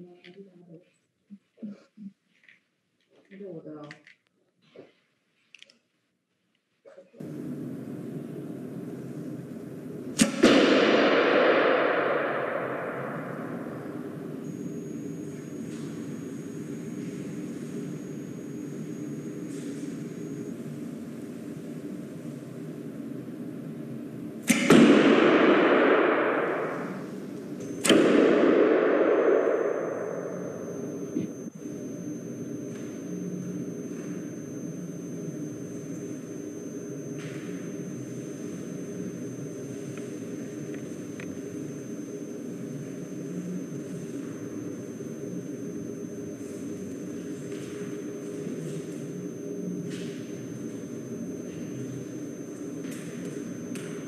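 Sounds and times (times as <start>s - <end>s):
bow string snapping with echo: 10.2s - 14.2s, 24.5s - 27.0s.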